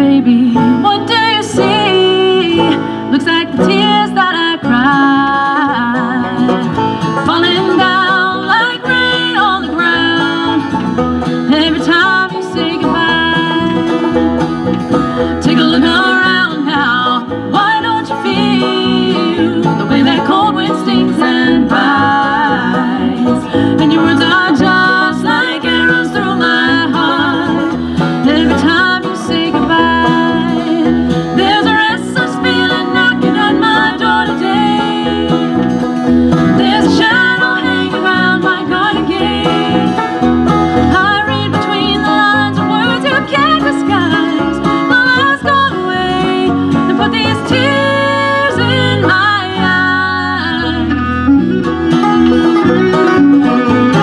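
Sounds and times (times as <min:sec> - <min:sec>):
person singing: 0:00.0 - 0:10.7, 0:11.5 - 0:14.2, 0:14.9 - 0:35.6, 0:36.4 - 0:40.1
acoustic guitar: 0:00.0 - 0:54.0
banjo picking: 0:00.0 - 0:54.0.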